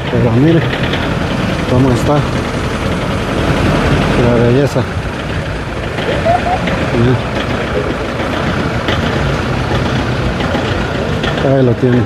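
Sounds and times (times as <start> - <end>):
busy street noise: 0.0 - 12.0
vehicle engine idling: 0.0 - 12.0
faint voice: 6.0 - 6.7.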